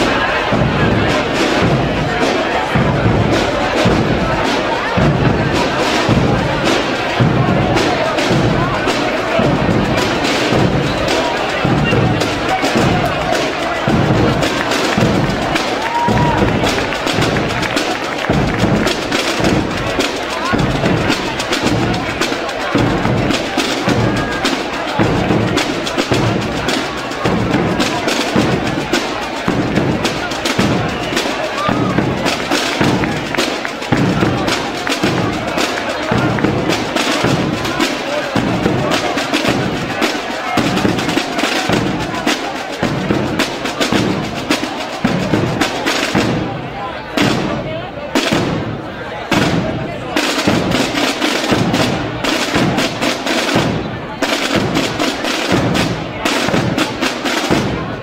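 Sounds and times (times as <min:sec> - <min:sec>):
rapid sharp drum strokes: 0:00.0 - 0:58.0.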